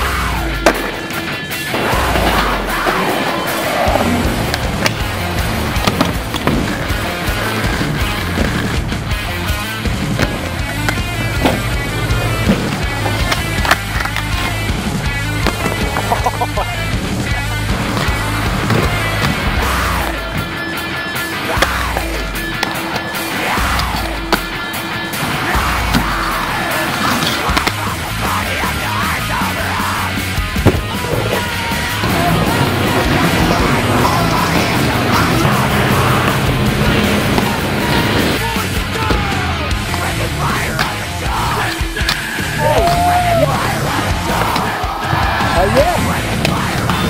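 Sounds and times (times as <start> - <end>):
inline skate wheels rolling on concrete: 0.0 - 47.0
loud rock music: 0.0 - 47.0.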